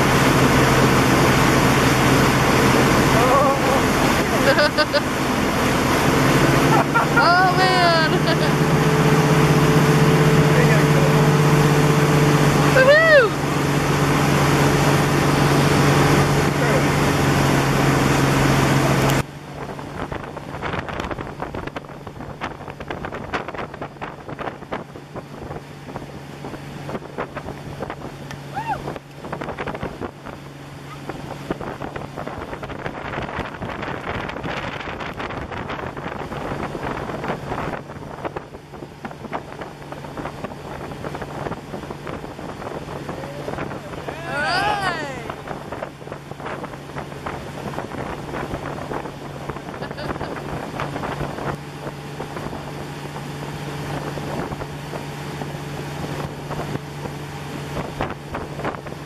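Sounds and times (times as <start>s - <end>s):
motorboat engine humming: 0.0s - 59.0s
wind on microphone: 0.0s - 59.0s.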